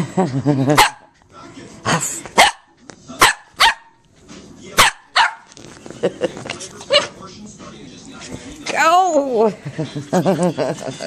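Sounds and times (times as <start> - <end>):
small dog barking: 0.8 - 1.1, 2.4 - 3.9, 4.8 - 5.5.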